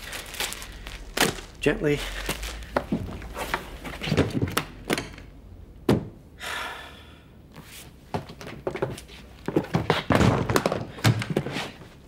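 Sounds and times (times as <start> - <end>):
suitcase thuds and clicks: 2.8 - 6.2.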